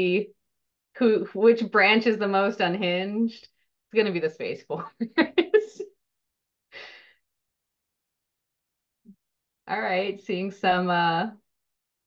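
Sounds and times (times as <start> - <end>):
woman laughing: 4.8 - 5.9.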